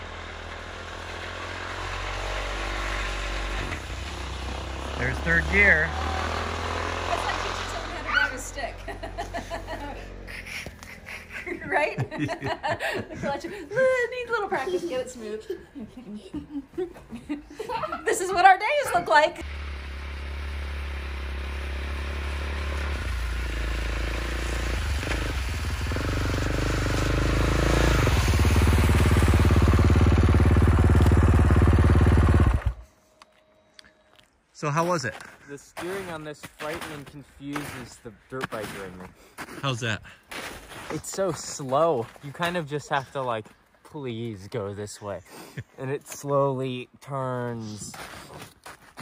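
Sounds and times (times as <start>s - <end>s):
engine humming: 0.0s - 15.6s, 17.5s - 34.7s.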